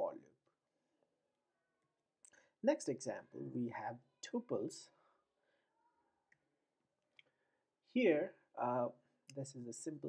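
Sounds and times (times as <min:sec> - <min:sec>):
man speaking: 0:00.0 - 0:00.3, 0:02.6 - 0:05.0, 0:07.9 - 0:10.0.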